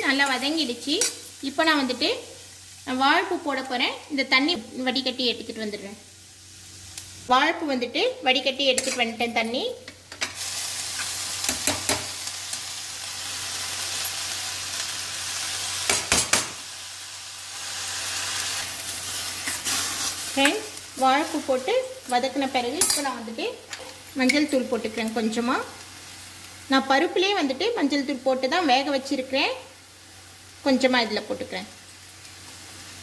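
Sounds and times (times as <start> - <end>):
food sizzling in hot oil: 0.0 - 33.0.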